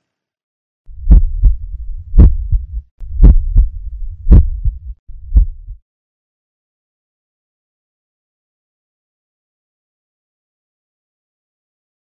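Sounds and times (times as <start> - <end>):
heartbeat thuds: 0.9 - 5.8.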